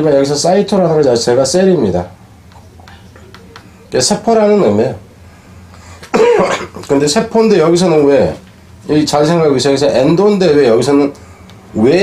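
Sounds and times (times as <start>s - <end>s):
man speaking: 3.8s - 5.1s, 6.5s - 11.2s, 11.8s - 12.0s.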